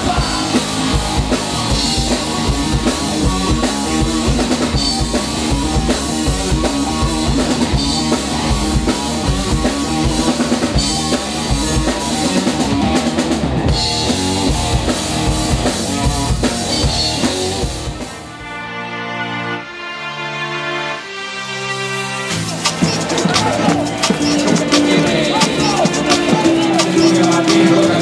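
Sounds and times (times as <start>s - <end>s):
rock band playing: 0.0s - 28.0s.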